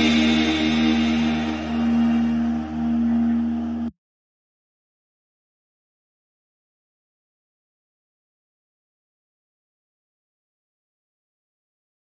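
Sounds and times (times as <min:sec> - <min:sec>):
music of long held notes: 0:00.0 - 0:03.9.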